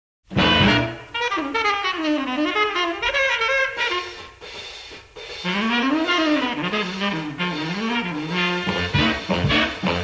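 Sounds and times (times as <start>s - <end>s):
lower horn line: 0.3s - 4.5s, 5.4s - 10.0s
jazz saxophones and brass: 0.3s - 10.0s.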